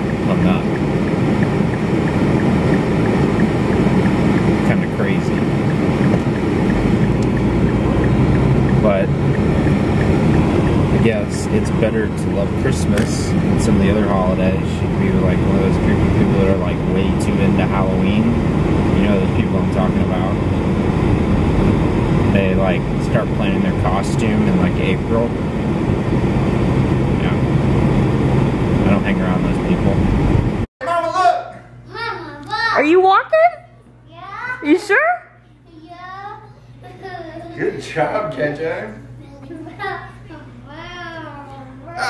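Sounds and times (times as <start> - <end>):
turn signal ticking: 0.0 - 14.0
car engine idling: 0.0 - 30.7
person talking: 10.9 - 18.3.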